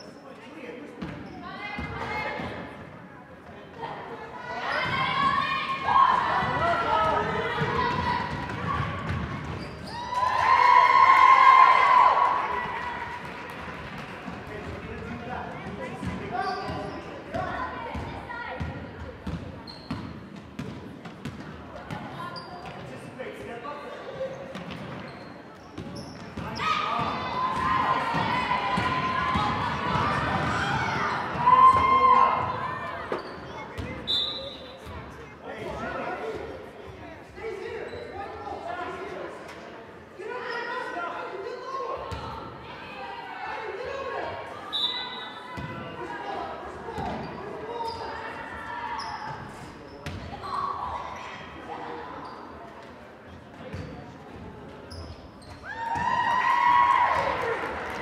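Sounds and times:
spectators' voices: 0.0 - 19.8, 20.7 - 55.0.

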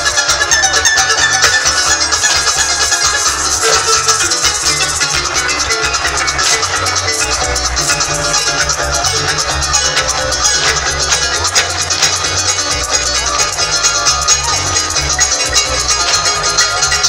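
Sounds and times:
maracas: 0.0 - 17.0
plucked strings: 0.0 - 17.0
steady bass: 0.0 - 17.0.

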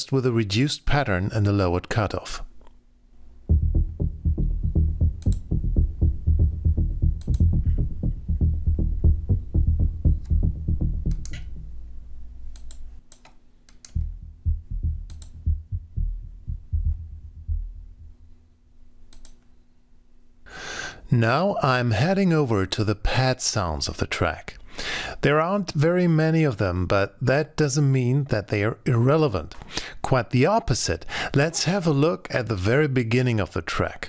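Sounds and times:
synthesizer bass arpeggio: 3.4 - 12.3, 14.0 - 18.4
held low synth tone: 3.4 - 12.5, 14.0 - 18.6.

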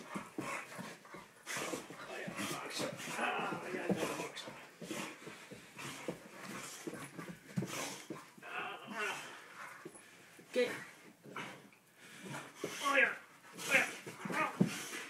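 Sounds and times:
man talking: 2.1 - 4.4.

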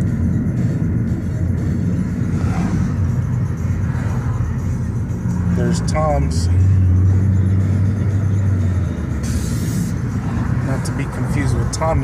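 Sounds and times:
car driving cabin drone: 0.0 - 12.0.

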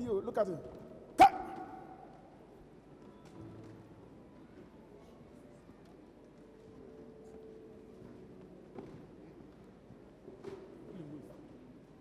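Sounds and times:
man shouting: 1.2 - 2.0.

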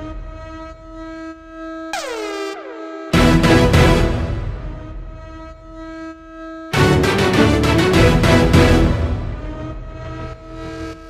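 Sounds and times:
held horn-like note: 0.0 - 11.0
swooping pitch-drop effect: 2.0 - 3.1.

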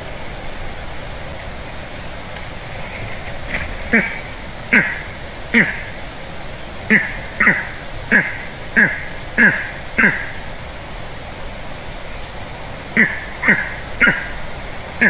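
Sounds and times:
eagle calling: 0.0 - 10.7, 12.9 - 15.0.

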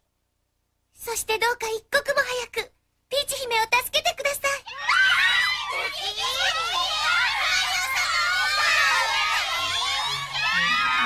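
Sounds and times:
cartoon voices squealing: 4.6 - 11.0.

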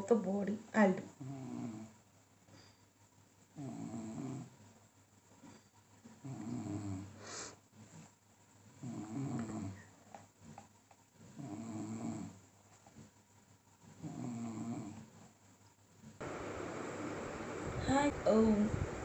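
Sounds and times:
person snoring: 3.6 - 4.5.

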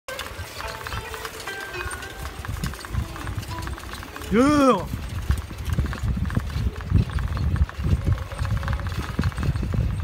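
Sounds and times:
bicycle rolling over stone paving: 0.1 - 10.0.

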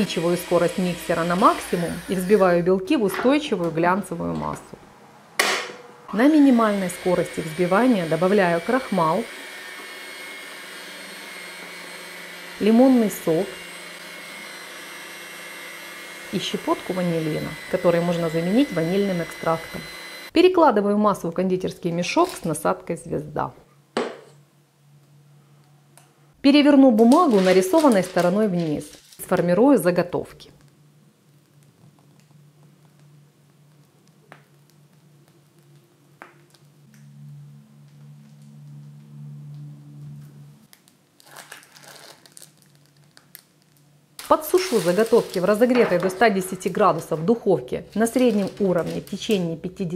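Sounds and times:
stand mixer whining: 6.6 - 20.3
plastic piping bag crinkling: 27.1 - 29.6, 40.7 - 47.2, 47.9 - 49.5
low steady hum: 28.1 - 41.2.

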